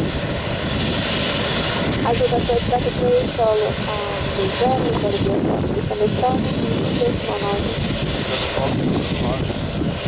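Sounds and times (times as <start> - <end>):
jet engines at low power: 0.0 - 10.0
voice: 2.1 - 9.5.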